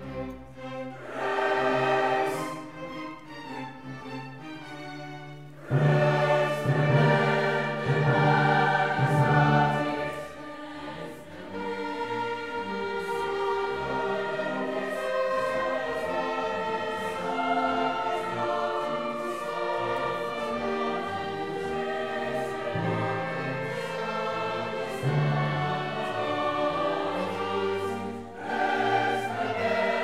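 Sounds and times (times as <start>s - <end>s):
choir singing with string orchestra: 0.0s - 30.0s.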